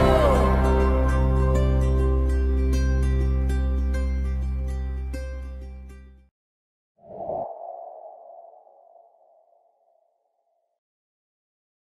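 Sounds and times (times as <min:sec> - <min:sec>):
hollow whooshing tone: 0:07.0 - 0:10.0.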